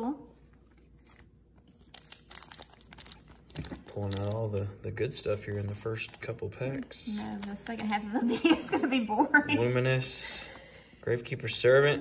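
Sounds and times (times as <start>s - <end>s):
foil wrapper crinkling: 0.6s - 8.5s.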